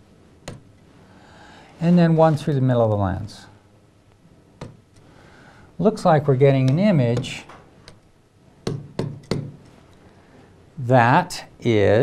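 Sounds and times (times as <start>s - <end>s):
stylus tapping on screen: 8.6s - 9.6s.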